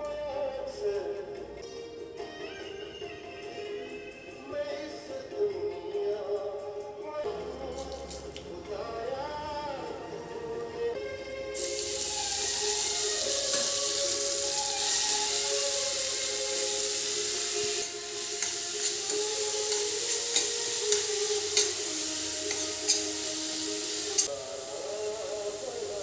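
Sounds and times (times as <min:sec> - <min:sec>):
vegetables sizzling in hot oil: 0:11.6 - 0:26.0
spatula scraping pan: 0:17.6 - 0:24.3.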